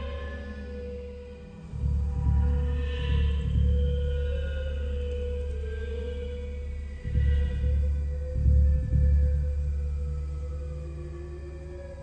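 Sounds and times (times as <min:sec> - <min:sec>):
deep low drone: 0:00.0 - 0:12.0.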